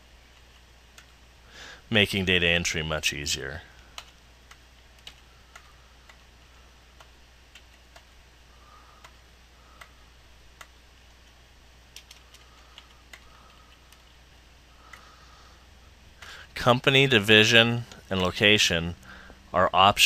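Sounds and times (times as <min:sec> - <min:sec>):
computer keyboard keystrokes: 0:04.0 - 0:06.2, 0:11.9 - 0:14.2.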